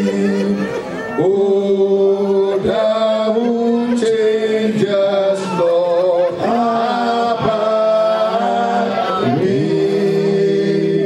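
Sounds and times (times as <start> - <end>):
voices singing slow song: 0.0 - 11.0.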